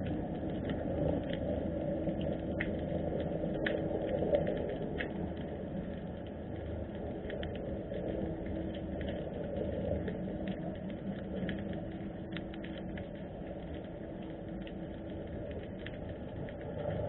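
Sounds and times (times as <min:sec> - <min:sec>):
underwater clicks and crackles: 0:00.0 - 0:17.0
underwater low rumble: 0:00.0 - 0:17.0.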